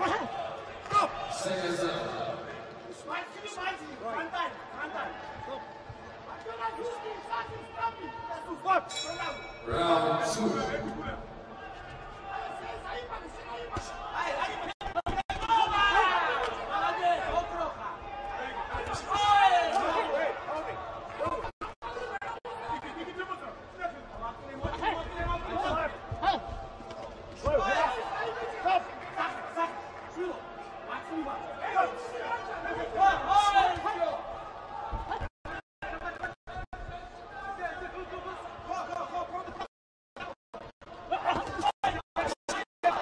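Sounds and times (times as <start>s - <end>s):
crowd chatter in large hall: 0.0s - 41.6s.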